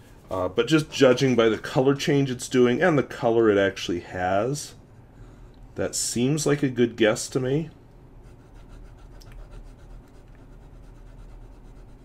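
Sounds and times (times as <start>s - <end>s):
pen nib scratching paper: 8.2s - 12.0s.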